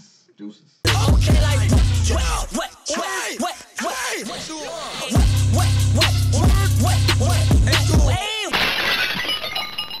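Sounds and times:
outro music beat: 0.9s - 2.8s, 4.2s - 8.2s
glass shattering effect: 8.5s - 10.0s.

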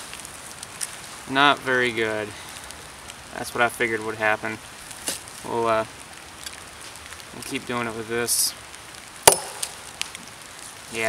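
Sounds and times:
machete chopping into log: 9.3s - 9.8s.

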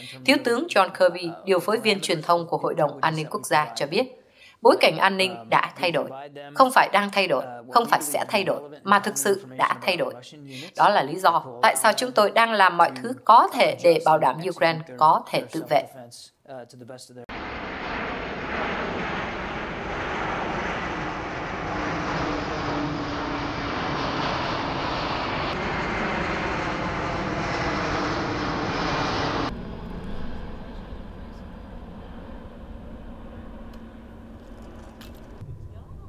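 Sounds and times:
jet engines roaring: 17.3s - 36.0s.

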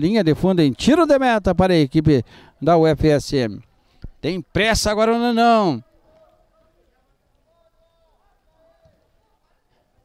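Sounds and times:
faint distant voices: 3.6s - 10.0s.

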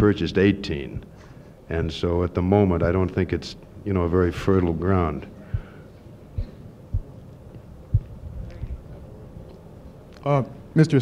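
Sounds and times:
steady hum: 0.0s - 10.8s
low dull thumps: 5.5s - 8.9s.

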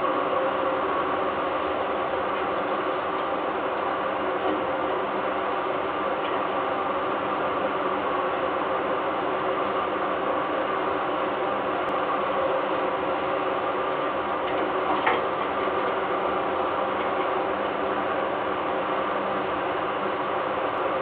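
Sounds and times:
machine-like hum and hiss: 0.0s - 21.0s.

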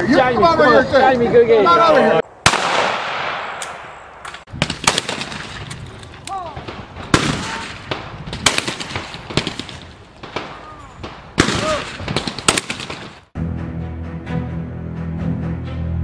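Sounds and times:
shotgun shots echoing: 2.4s - 5.8s, 6.4s - 13.3s.

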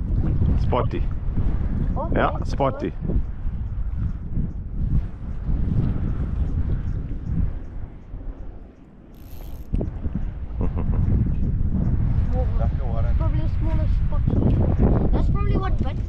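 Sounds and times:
wind buffeting microphone: 0.0s - 16.0s
fishing reel ticking: 8.7s - 9.9s.

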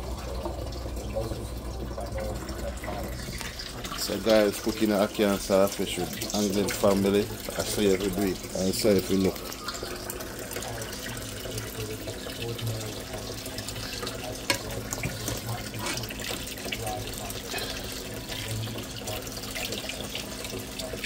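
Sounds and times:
food sizzling in a pan: 13.0s - 21.0s.

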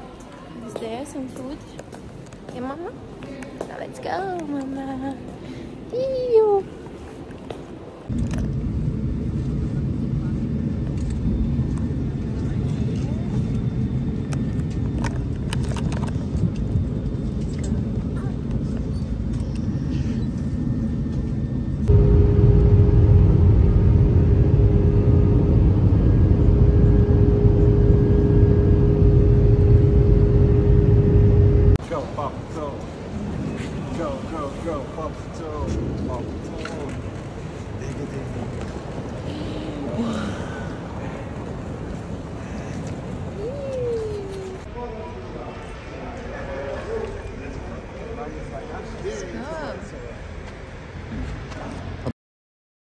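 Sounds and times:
jet engine cabin rumble: 8.0s - 31.8s
steady hum: 16.2s - 31.8s.

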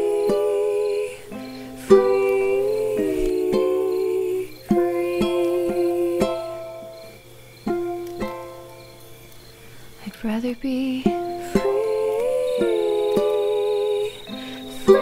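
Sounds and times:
person singing softly: 0.0s - 7.2s, 10.0s - 15.0s
ukulele chords plucked and strummed: 0.0s - 8.8s, 10.8s - 15.0s.

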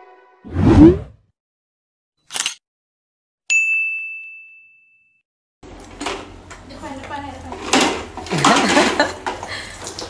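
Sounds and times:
bell ding: 3.5s - 5.2s.

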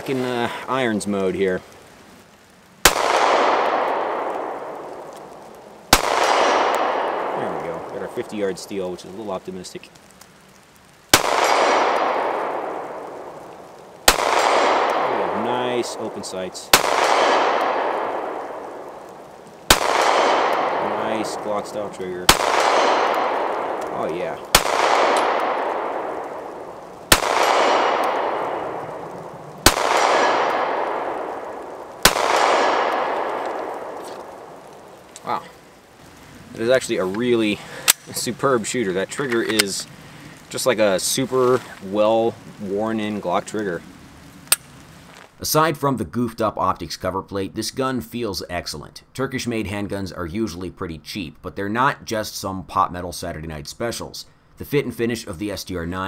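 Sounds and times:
pistol shots with echo: 2.8s - 5.1s, 5.9s - 7.6s, 11.1s - 13.1s, 14.0s - 16.0s, 16.7s - 18.9s, 19.7s - 21.5s, 22.3s - 29.0s, 29.6s - 34.6s.

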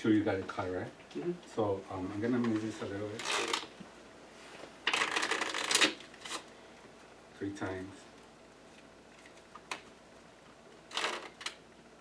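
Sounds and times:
playing cards being shuffled: 2.4s - 3.7s, 4.5s - 6.5s, 10.9s - 11.6s.

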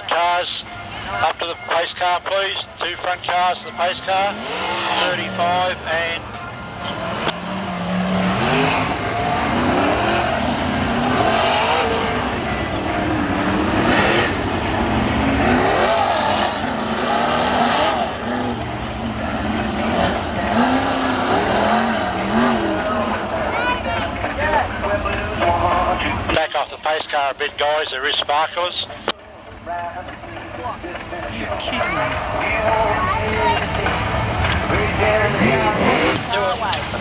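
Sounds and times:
cars passing by: 0.0s - 37.0s
race car engines revving: 0.0s - 37.0s.

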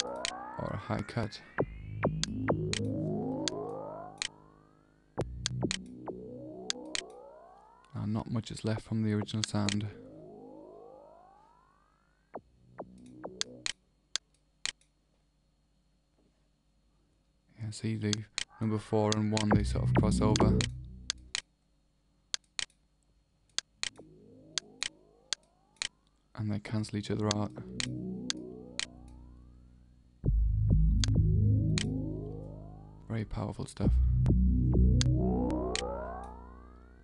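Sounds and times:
electronic hits dropping in pitch: 0.0s - 4.6s, 34.3s - 37.0s
rising synthesizer pitch sweep: 0.0s - 8.0s, 9.0s - 13.7s, 19.4s - 20.9s, 27.6s - 33.2s, 34.1s - 37.0s.

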